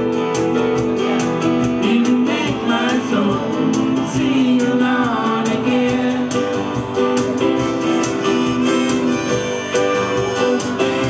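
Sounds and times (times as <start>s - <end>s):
electric guitar strummed: 6.1s - 11.0s
long held notes shifting pitch: 7.6s - 11.0s.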